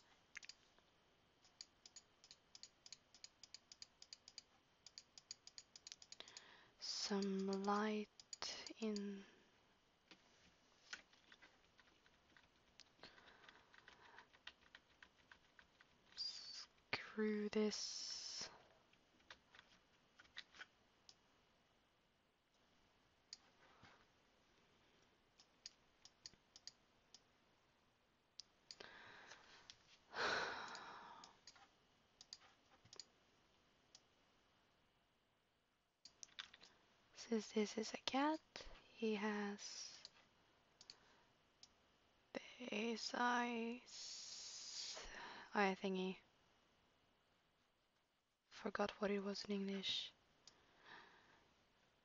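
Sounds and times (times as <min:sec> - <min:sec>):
rapid computer mouse clicking: 0:00.0 - 0:00.7, 0:01.4 - 0:06.5, 0:07.2 - 0:09.1, 0:10.8 - 0:16.9, 0:17.8 - 0:21.2, 0:25.4 - 0:27.3, 0:30.6 - 0:33.1, 0:40.8 - 0:41.0.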